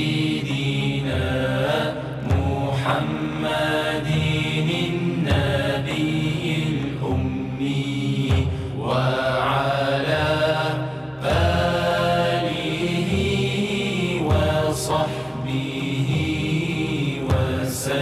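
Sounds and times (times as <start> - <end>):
person chanting melodically: 0.0 - 18.0
steady low drone tone: 0.0 - 18.0.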